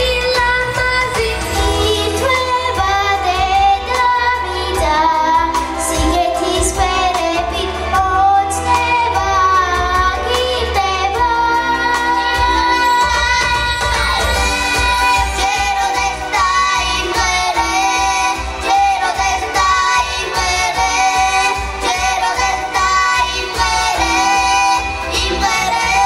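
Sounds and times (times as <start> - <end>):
children singing together: 0.7 - 26.0.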